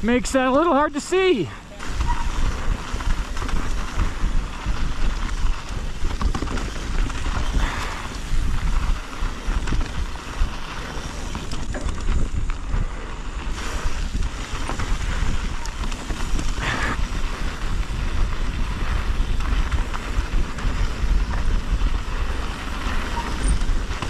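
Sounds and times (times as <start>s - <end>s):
bike tyres and frame rattling: 0.0s - 24.0s
wind buffeting microphone: 1.6s - 24.0s.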